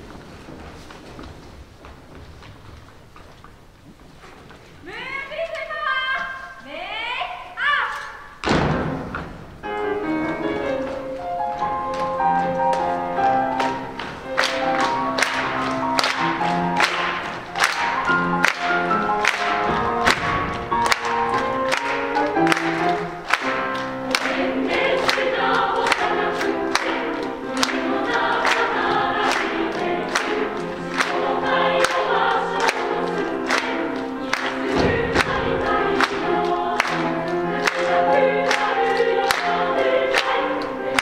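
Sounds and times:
piano accompaniment: 8.4s - 41.0s
girls' choir singing: 9.6s - 41.0s.

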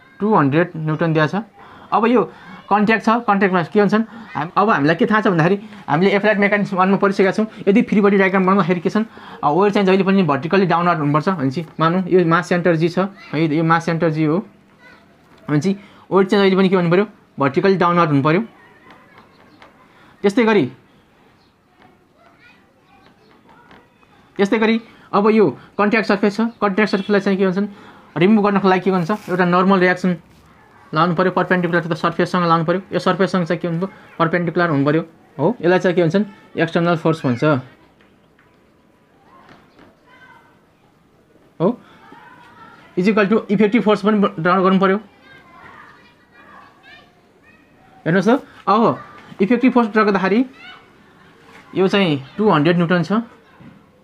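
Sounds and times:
faint distant voices: 0.0s - 54.0s
man speaking: 0.2s - 14.5s, 15.5s - 18.5s, 24.4s - 30.3s, 30.9s - 37.8s, 43.0s - 45.1s, 48.0s - 50.6s, 51.7s - 53.3s.

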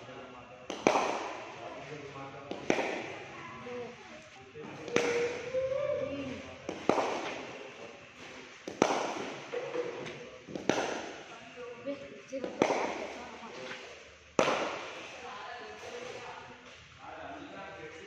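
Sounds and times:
cricket bat knocking ball: 0.7s - 1.4s, 2.5s - 3.2s, 6.6s - 7.5s, 8.6s - 9.5s, 10.5s - 11.2s, 12.4s - 13.2s, 14.4s - 15.0s.

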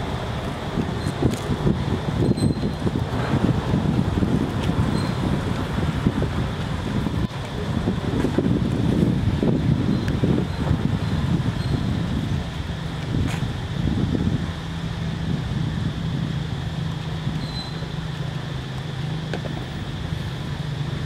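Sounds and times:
wind rumbling on microphone: 0.0s - 21.0s.

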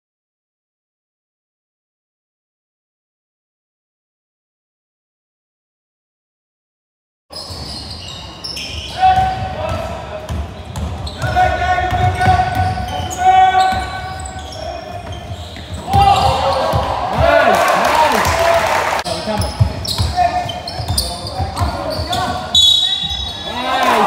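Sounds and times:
sneakers squeaking: 7.3s - 17.5s, 18.1s - 24.0s
people calling out: 11.2s - 19.0s
crowd shouting: 15.8s - 19.0s, 23.4s - 24.0s.

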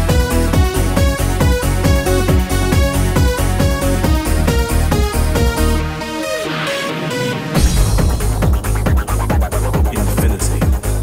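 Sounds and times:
kick-drum beat: 0.0s - 11.0s.

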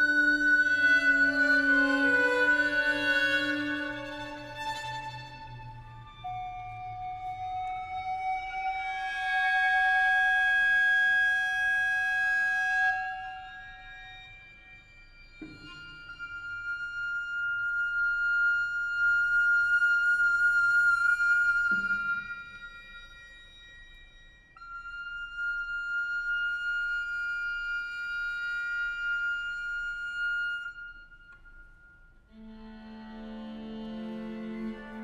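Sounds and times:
recorder and strings chamber music: 0.0s - 35.0s.

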